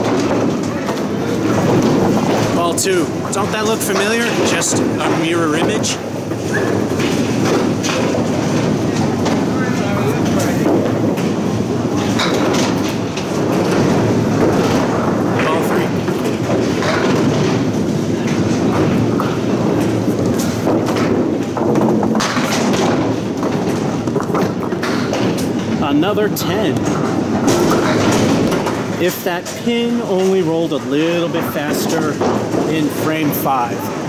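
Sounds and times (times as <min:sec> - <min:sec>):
bowling balls rolling on lanes: 0:00.0 - 0:34.0.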